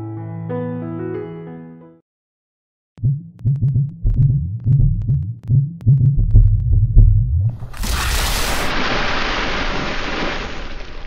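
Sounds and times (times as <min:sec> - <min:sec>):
deep low throbbing pulses: 0:03.0 - 0:07.5.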